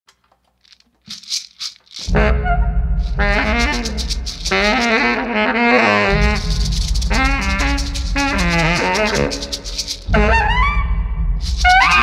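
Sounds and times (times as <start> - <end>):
shaker rattling: 0.5 - 2.2, 3.0 - 5.3, 6.1 - 10.2, 11.4 - 12.0
background music: 2.1 - 12.0.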